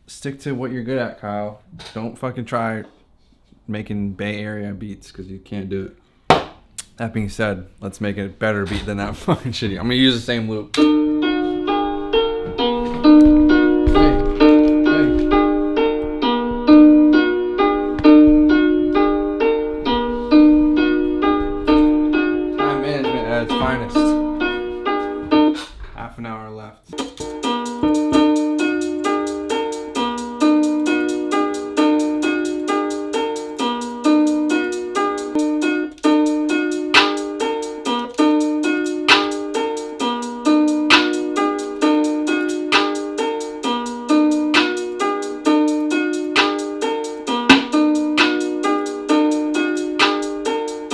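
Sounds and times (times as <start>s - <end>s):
looped plucked melody: 10.7s - 25.6s, 26.9s - 50.9s.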